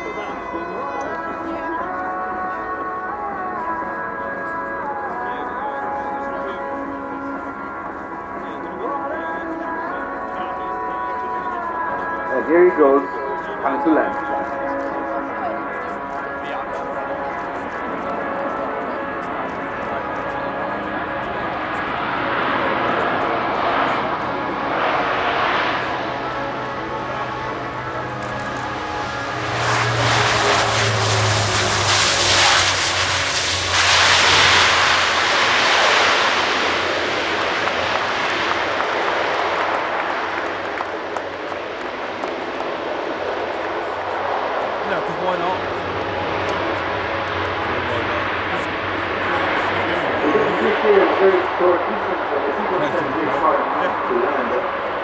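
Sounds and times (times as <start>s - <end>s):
turboprop aircraft propeller drone: 0.0s - 55.0s.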